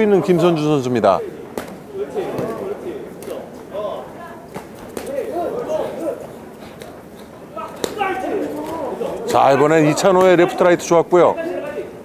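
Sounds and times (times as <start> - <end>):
faint shouting voices: 0.0 - 12.0.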